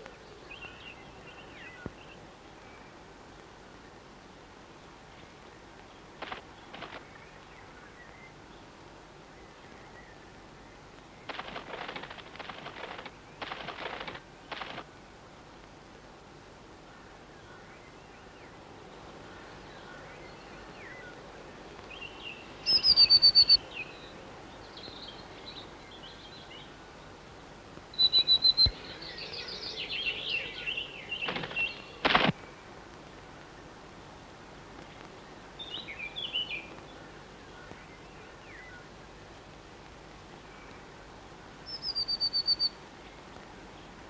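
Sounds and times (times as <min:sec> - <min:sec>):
soft bird chirps: 0:17.3 - 0:27.1, 0:27.9 - 0:32.7, 0:40.4 - 0:44.0
chickadee calling: 0:22.1 - 0:23.7, 0:27.9 - 0:32.1, 0:41.6 - 0:42.8.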